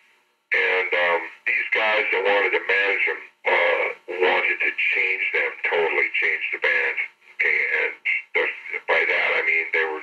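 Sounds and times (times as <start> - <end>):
man talking: 0.5 - 10.0.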